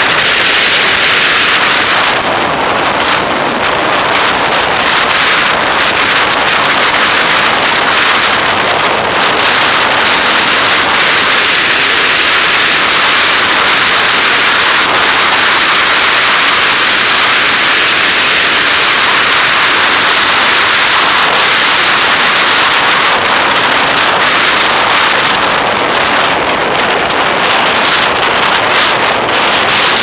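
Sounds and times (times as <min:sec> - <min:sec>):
wind and road noise: 0:00.0 - 0:30.0.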